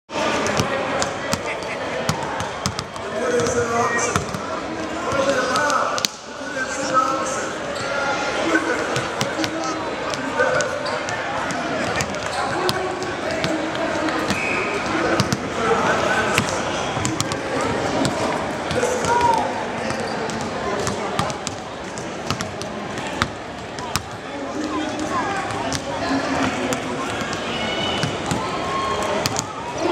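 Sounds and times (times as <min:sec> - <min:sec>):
arena crowd chatter: 0:00.0 - 0:29.9
basketballs bouncing on court: 0:00.3 - 0:06.2, 0:08.8 - 0:15.6, 0:16.3 - 0:29.9
basketball bouncing on hardwood: 0:02.1 - 0:03.6.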